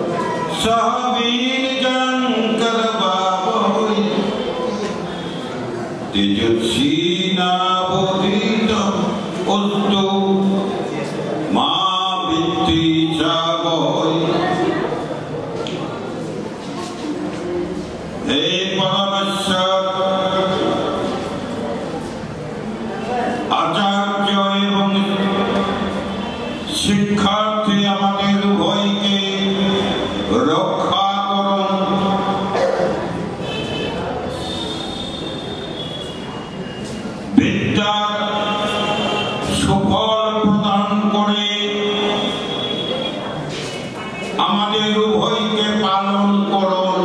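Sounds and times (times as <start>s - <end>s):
man chanting over public address: 0.0s - 15.2s, 17.8s - 35.4s, 37.2s - 47.0s
hall background noise: 0.0s - 47.0s
microphone feedback squeal: 33.4s - 37.2s, 41.8s - 43.4s.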